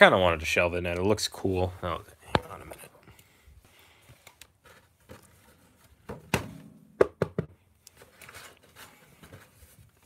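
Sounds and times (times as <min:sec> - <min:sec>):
plastic case knocks: 0:06.1 - 0:07.6.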